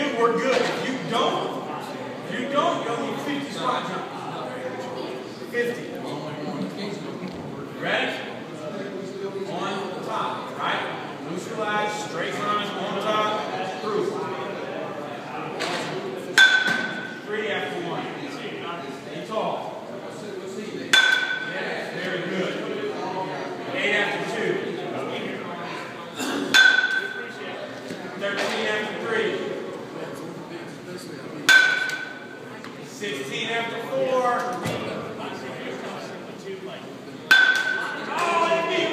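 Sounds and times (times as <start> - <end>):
murmur of voices: 0.0 - 38.9
metal bat hitting ball: 16.4 - 17.1, 20.9 - 21.5, 26.5 - 27.2, 31.5 - 32.3, 37.3 - 38.0.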